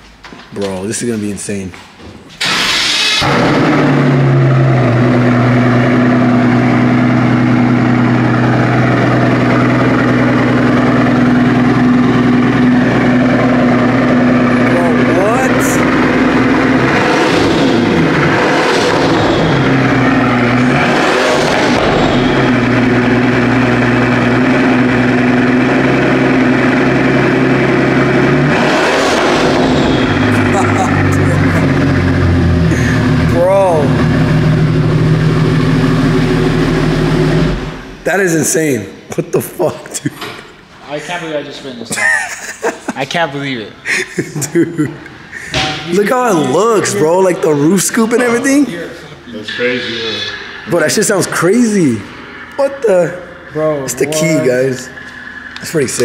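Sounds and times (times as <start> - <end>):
engine revving: 2.4 - 38.7, 45.2 - 56.0
car engine idling: 2.4 - 39.1, 45.0 - 56.0.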